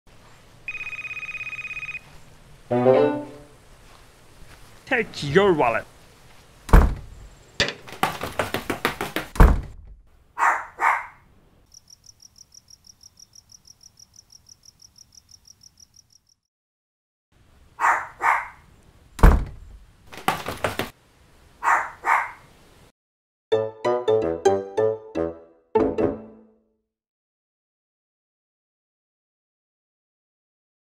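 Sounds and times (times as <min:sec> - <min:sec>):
music: 0:02.7 - 0:03.5, 0:23.5 - 0:26.8
cartoon thuds: 0:06.7 - 0:10.0
dog barking: 0:10.4 - 0:11.2, 0:17.8 - 0:18.6, 0:21.6 - 0:22.4
crickets chirping: 0:11.6 - 0:16.5.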